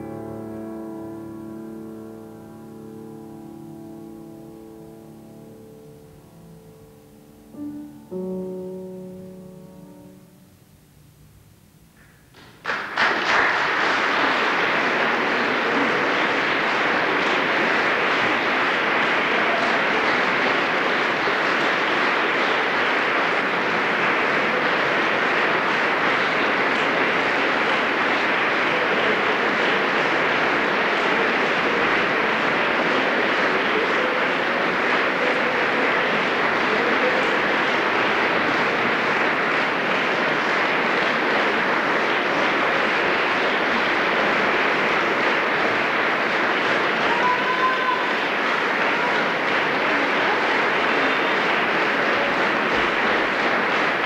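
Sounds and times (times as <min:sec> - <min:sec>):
audience applauding: 0:00.0 - 0:10.3, 0:12.0 - 0:54.0.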